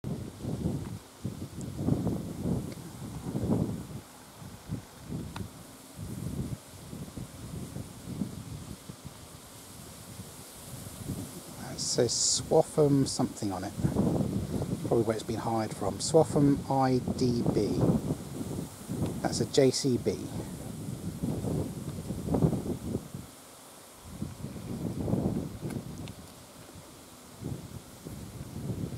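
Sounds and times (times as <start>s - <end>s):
wind buffeting microphone: 0.0s - 23.4s, 24.0s - 28.9s.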